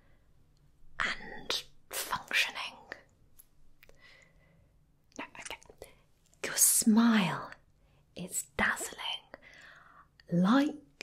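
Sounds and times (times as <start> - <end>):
woman whispering: 1.0 - 3.1, 5.2 - 7.6, 8.2 - 9.4.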